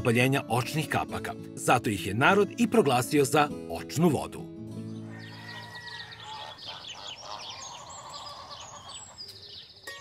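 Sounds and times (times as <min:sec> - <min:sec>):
birds twittering: 0:04.7 - 0:10.0.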